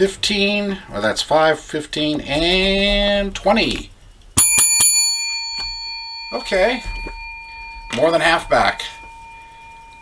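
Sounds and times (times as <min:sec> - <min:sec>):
small bell ringing: 0:04.4 - 0:10.0.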